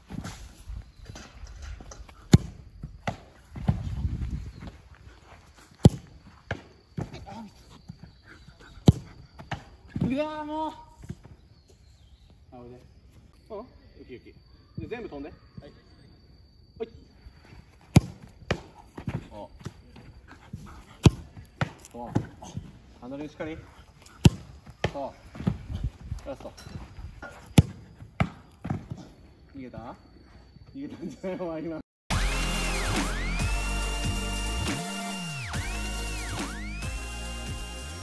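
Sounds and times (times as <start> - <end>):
goalkeeper thudding on ground: 2.3 - 4.0
soccer ball thuds: 2.3 - 4.8, 5.8 - 7.3, 17.9 - 19.8, 20.5 - 22.7, 24.2 - 25.9, 27.4 - 29.0.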